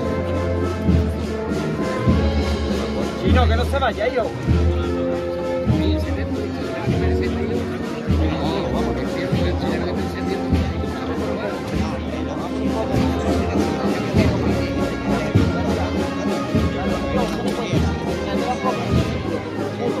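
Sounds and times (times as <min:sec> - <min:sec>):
brass band playing a march: 0:00.0 - 0:20.0
heavy drum beats: 0:00.0 - 0:20.0.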